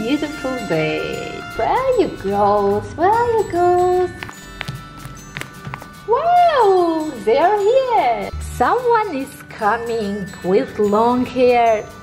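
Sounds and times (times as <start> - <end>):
soft background music: 0.0 - 12.0
light taps: 4.2 - 5.9.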